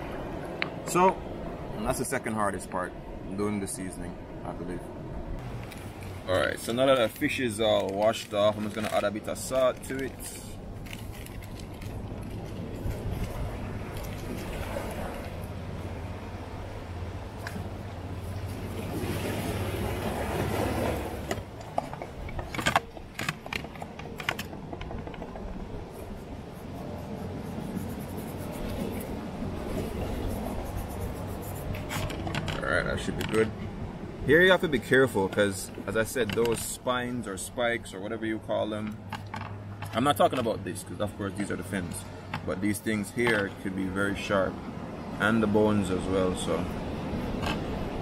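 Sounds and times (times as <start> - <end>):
low outdoor rumble: 0.0 - 48.0.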